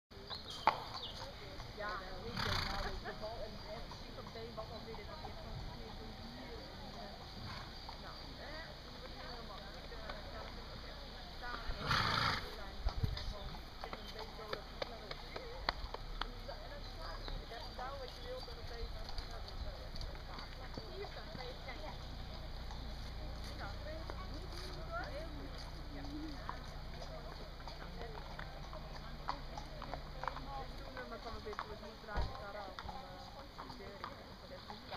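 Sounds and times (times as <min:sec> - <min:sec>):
distant people talking: 0:00.1 - 0:34.9
distant voices: 0:00.1 - 0:34.9.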